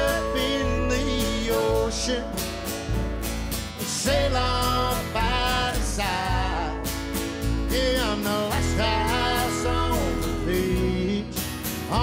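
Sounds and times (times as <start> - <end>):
acoustic country band playing: 0.0 - 12.0.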